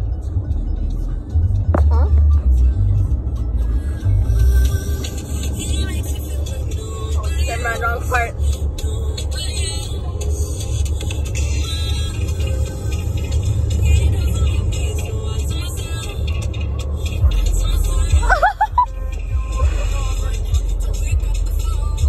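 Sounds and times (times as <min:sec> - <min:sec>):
car road rumble: 0:00.0 - 0:22.0
faint music and singing: 0:00.0 - 0:22.0.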